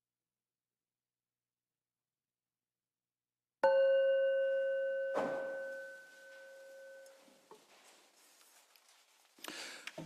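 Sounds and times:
singing bowl ringing: 0:03.6 - 0:07.3
soft rustle: 0:05.8 - 0:10.0.

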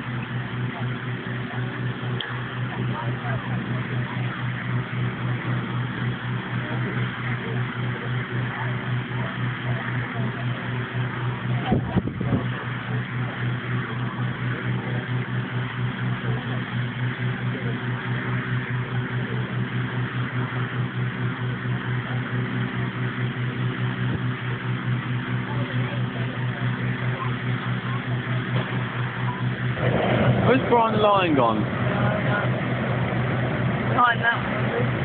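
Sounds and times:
inflator fan engine hum: 0:00.0 - 0:35.0.

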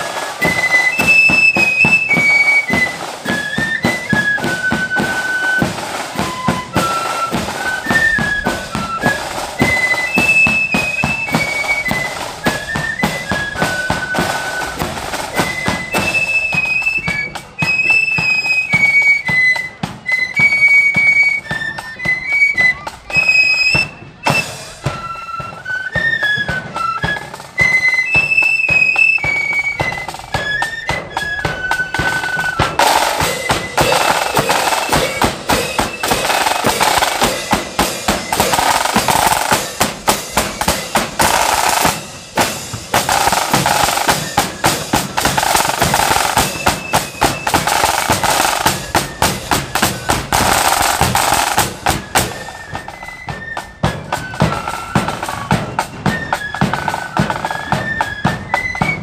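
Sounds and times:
drum beats: 0:00.0 - 0:59.0
flute melody: 0:00.0 - 0:59.0
snare drum rolls: 0:00.0 - 0:59.0.

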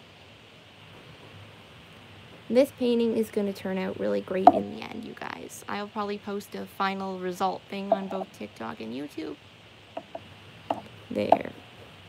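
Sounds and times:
faint steady hiss: 0:00.0 - 0:12.0
low hum: 0:03.8 - 0:05.8, 0:07.7 - 0:09.0.

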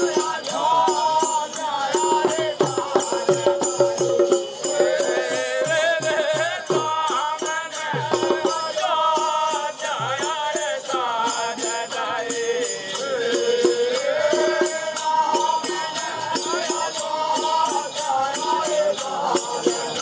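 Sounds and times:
rattling percussion: 0:00.0 - 0:20.0
barrel drum beaten fast: 0:02.0 - 0:09.4.

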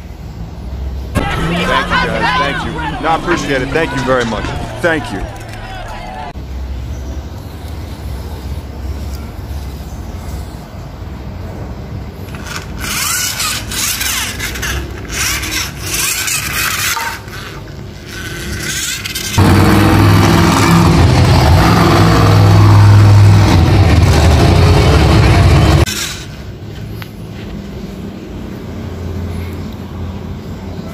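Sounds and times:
loud monster truck engine: 0:01.1 - 0:06.4, 0:12.3 - 0:26.5
toy cars clicking on tiled floor: 0:12.3 - 0:19.4, 0:25.8 - 0:26.5.

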